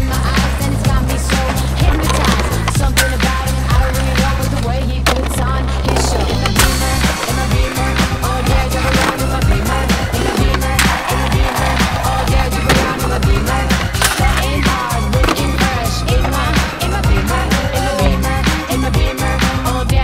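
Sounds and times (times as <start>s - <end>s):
hip-hop beat with heavy bass: 0.0s - 20.0s
skateboards clacking and grinding: 0.0s - 20.0s
skateboards rolling on stone: 0.0s - 20.0s.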